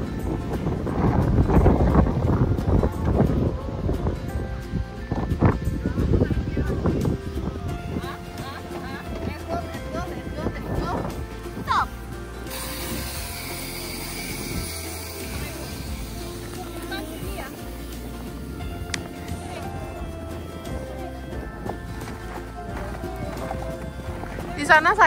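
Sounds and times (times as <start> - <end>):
background music with bass line: 0.0 - 25.0.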